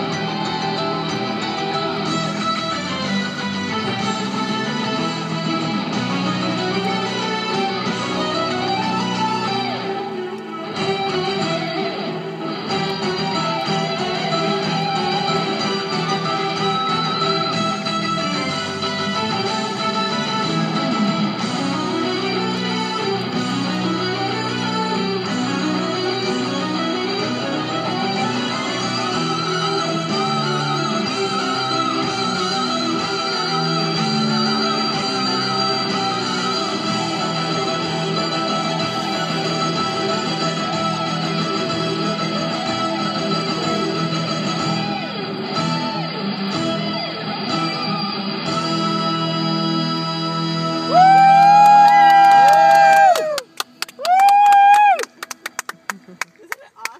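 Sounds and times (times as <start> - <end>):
christmas music with electric guitar: 0.0 - 56.9.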